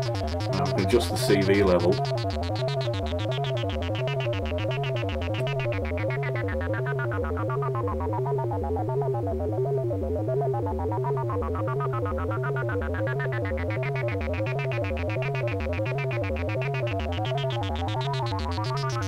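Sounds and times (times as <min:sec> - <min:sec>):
synthesizer tone with wobbling filter: 0:00.0 - 0:19.0.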